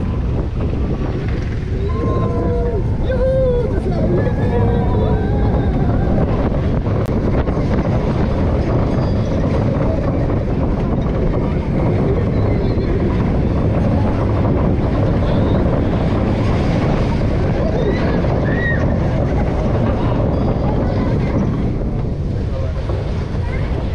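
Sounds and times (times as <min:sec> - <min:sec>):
roller coaster rumbling on track: 0:00.0 - 0:23.9
wind buffeting microphone: 0:00.0 - 0:23.9.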